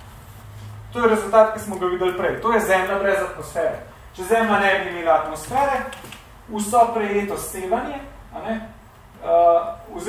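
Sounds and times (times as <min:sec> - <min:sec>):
man speaking: 0:00.9 - 0:10.0.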